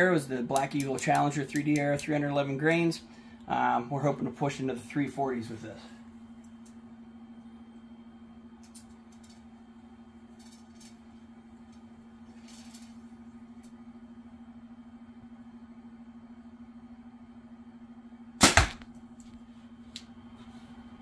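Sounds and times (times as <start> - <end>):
steady low hum: 0.0 - 21.0
arrow striking target: 18.4 - 18.9
bow string crack: 18.4 - 19.4.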